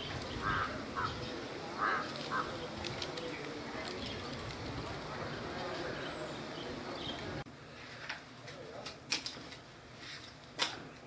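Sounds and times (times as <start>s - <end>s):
crow cawing: 0.4s - 1.2s, 1.8s - 2.6s.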